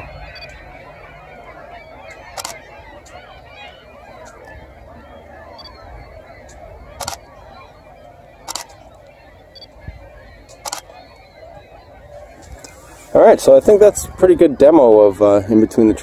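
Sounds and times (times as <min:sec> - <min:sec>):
faint outdoor background noise: 0:00.0 - 0:16.0.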